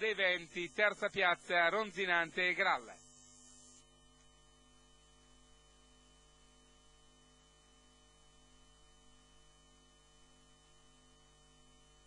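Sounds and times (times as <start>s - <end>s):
faint hum of held tones: 0.0s - 12.0s.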